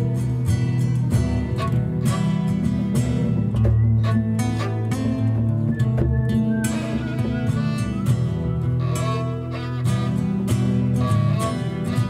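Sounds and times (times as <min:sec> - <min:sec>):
acoustic guitar strumming: 0:00.0 - 0:12.0
upright piano playing: 0:03.3 - 0:09.8.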